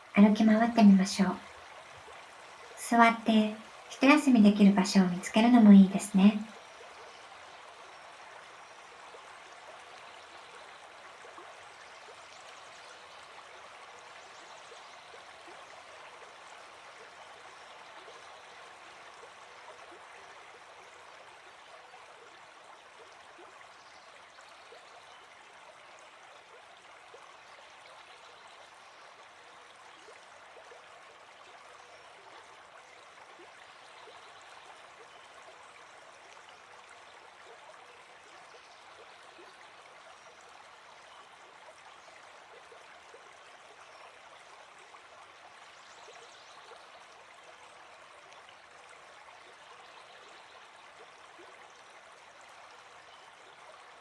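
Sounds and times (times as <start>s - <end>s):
stream running water: 0.0s - 54.0s.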